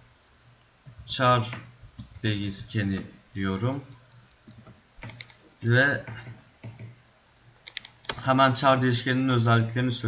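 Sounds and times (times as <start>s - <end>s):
keyboard keys clicking: 5.0s - 6.9s, 7.6s - 8.9s.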